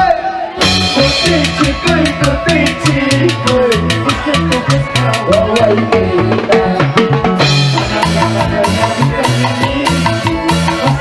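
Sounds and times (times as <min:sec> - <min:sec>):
live band music through pa: 0:00.0 - 0:11.0
fast drum beat: 0:00.6 - 0:11.0.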